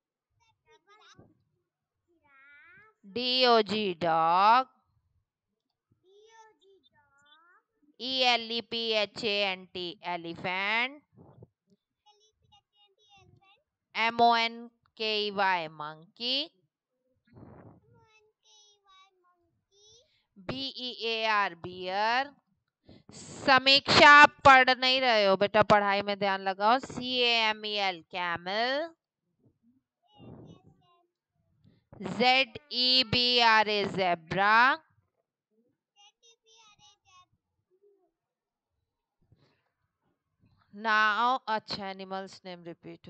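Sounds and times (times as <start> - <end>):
child's faint high voice: 0.4 - 1.2, 2.2 - 3.0, 6.1 - 7.7, 12.1 - 13.6, 17.9 - 20.1, 36.0 - 37.2
child's sing-song voice: 18.5 - 19.0.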